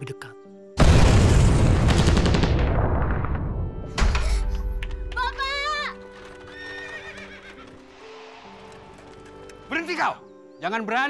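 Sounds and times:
explosion rumble: 0:00.8 - 0:04.8
deep boom: 0:00.8 - 0:05.0.

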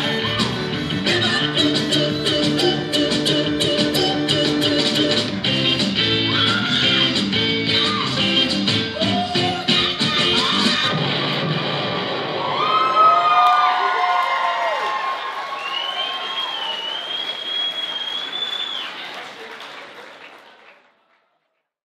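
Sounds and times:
music: 0:00.0 - 0:12.5
audience applauding and cheering: 0:12.1 - 0:21.2
high whoops and yells: 0:12.4 - 0:16.9.

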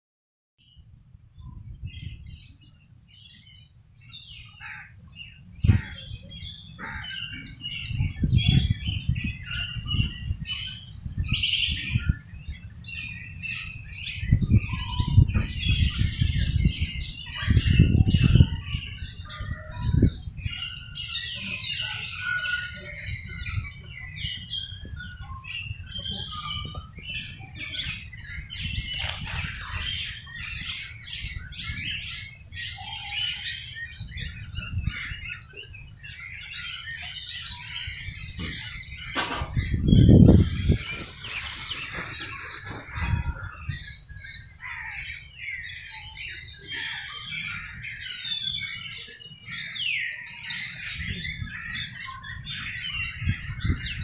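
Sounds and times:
birds chirping and calling: 0:00.6 - 0:54.0
low rumbles on microphone: 0:37.9 - 0:44.4.

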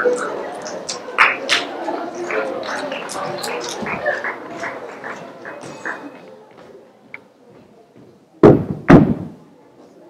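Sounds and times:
murmured voices: 0:00.0 - 0:10.0.

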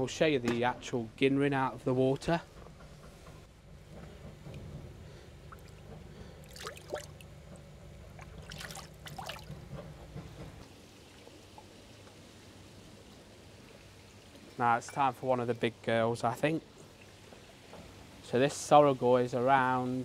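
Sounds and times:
water splashing in a bowl: 0:05.4 - 0:07.4, 0:08.1 - 0:09.6.

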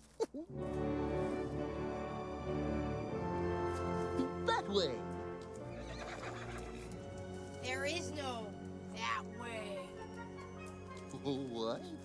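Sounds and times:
background music: 0:00.4 - 0:12.0
horse whinnying: 0:05.7 - 0:06.9.

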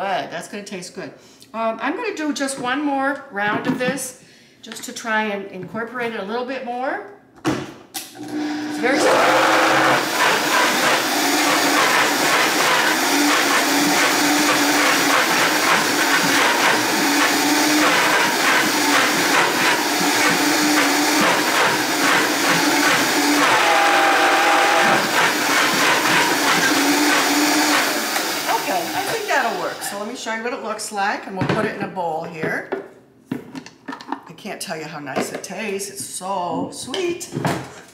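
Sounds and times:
blender motor running: 0:08.1 - 0:29.9
blender motor spinning down: 0:08.2 - 0:29.8.

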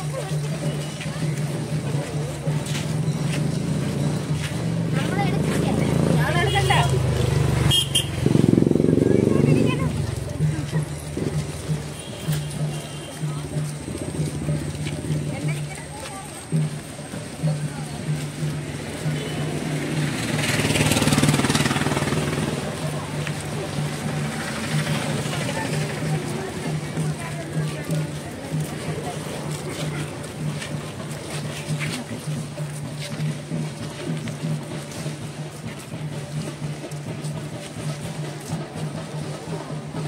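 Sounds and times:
voices of people walking: 0:00.0 - 0:40.0
motor vehicle engine passing: 0:02.5 - 0:12.0, 0:16.4 - 0:40.0.

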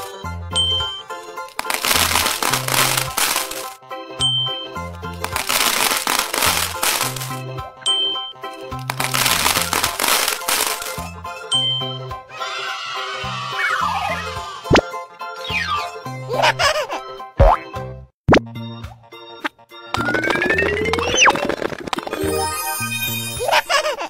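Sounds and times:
cheerful children's music: 0:00.0 - 0:24.0
small balls rattling into cups: 0:01.5 - 0:03.8, 0:05.2 - 0:07.4, 0:08.7 - 0:11.1.

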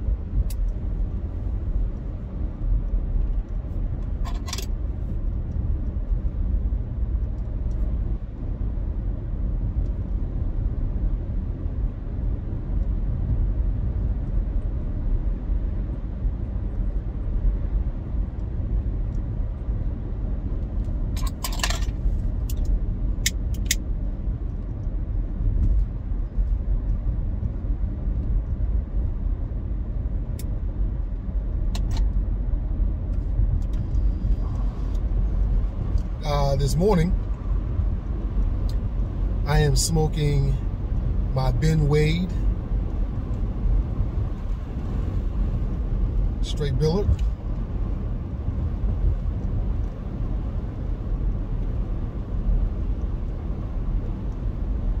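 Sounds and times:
car cabin road and engine rumble: 0:00.0 - 0:55.0.

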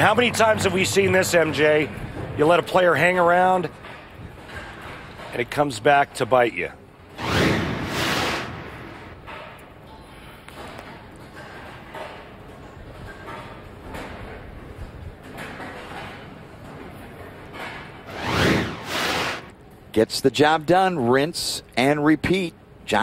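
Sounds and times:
steady background noise: 0:00.0 - 0:23.0
whoosh transition effect: 0:07.2 - 0:09.2, 0:18.1 - 0:19.5.

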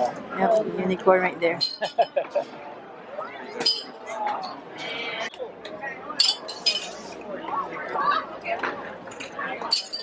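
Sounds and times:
plastic rings clinking on glass bottles: 0:09.1 - 0:10.0.

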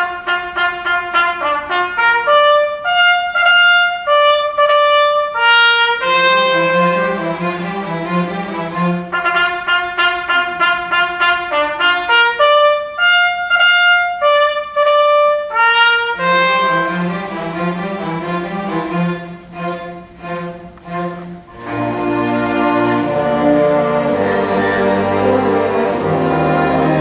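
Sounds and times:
trumpet fanfare call: 0:00.0 - 0:07.5, 0:09.1 - 0:17.2
low brass chords: 0:00.0 - 0:27.0
orchestra with strings: 0:00.0 - 0:27.0.

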